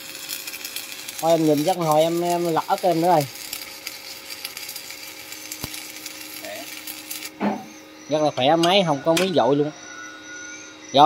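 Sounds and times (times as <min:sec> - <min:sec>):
welding arc crackle and hiss: 0:00.0 - 0:11.0.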